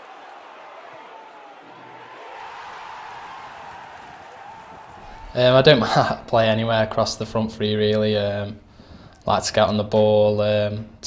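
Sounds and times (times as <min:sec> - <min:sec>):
stadium crowd noise: 0:00.0 - 0:07.6.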